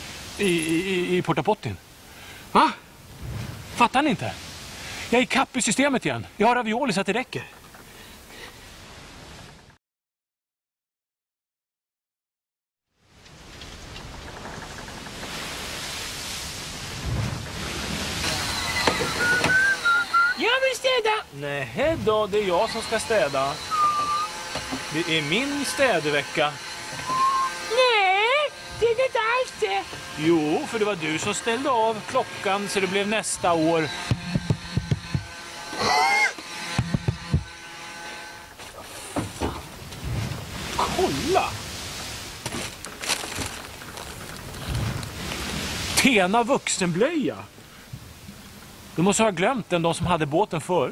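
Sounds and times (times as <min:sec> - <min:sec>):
brief squeaky pitched sound: 0:23.6 - 0:24.4, 0:27.0 - 0:27.6
man crying out: 0:35.8 - 0:36.4.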